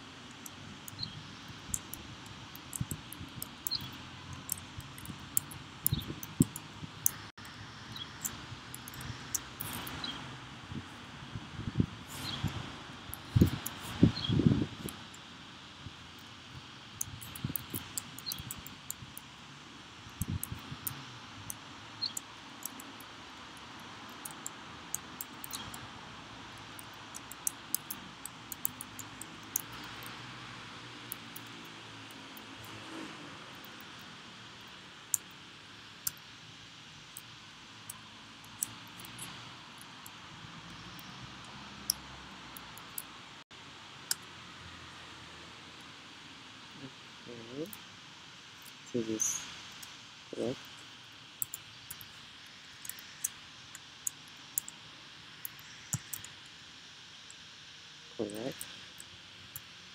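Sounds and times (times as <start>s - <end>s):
faint steady hiss: 0.0s - 59.9s
computer keyboard typing: 0.3s - 7.3s, 17.0s - 19.3s, 26.6s - 30.2s.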